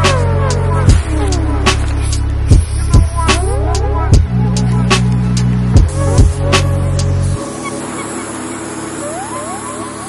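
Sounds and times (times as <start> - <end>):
rising synth swoops: 0.0 - 10.0
sustained synth notes: 0.0 - 10.0.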